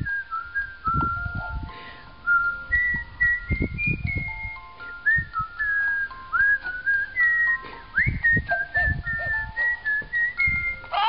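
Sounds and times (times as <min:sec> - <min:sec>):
soft low thumps: 0:00.0 - 0:01.7, 0:02.3 - 0:10.9.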